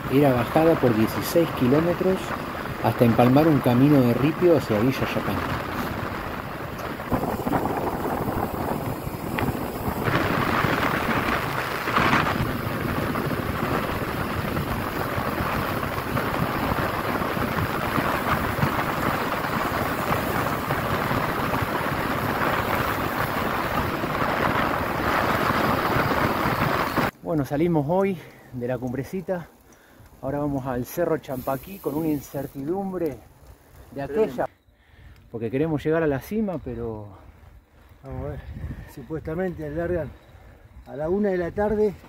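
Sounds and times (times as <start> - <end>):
wind buffeting microphone: 0.0 - 27.1, 35.8 - 42.0.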